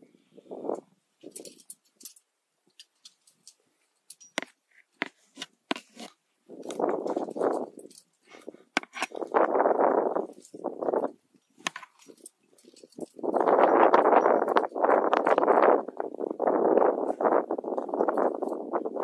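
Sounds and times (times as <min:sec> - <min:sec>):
climbing gear clinking: 0:00.7 - 0:19.0.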